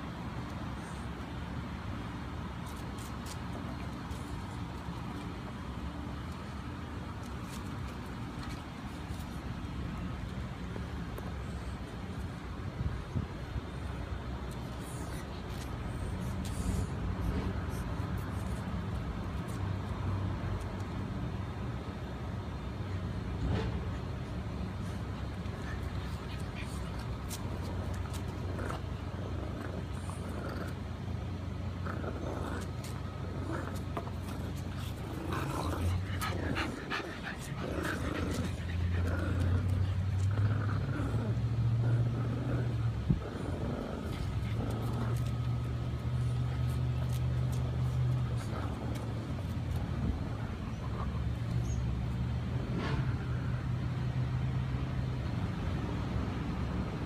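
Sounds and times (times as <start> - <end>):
low mechanical hum: 0.0 - 57.0
dogs growling and grunting: 25.7 - 51.4.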